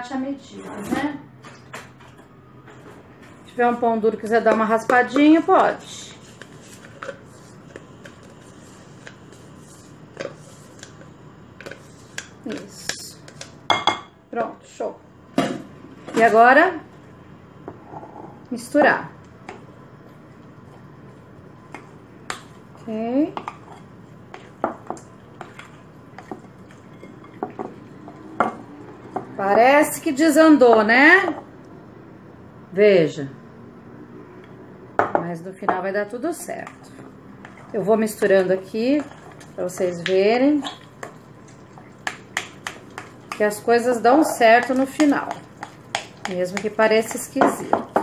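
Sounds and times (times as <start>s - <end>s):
spatula scraping plastic cup: 6.1s - 11.0s
utensil scraping glass bowl: 36.5s - 42.0s
spatula tapping cup: 42.0s - 43.5s, 44.4s - 48.0s.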